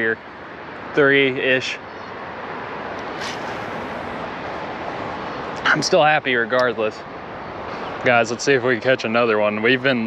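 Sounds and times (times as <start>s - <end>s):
rushing hiss: 3.1s - 4.6s.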